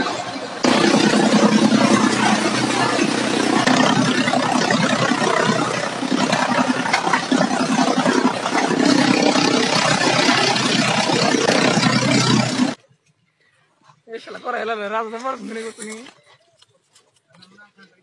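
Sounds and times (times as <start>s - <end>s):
chopping machine engine hum: 0.0s - 12.8s.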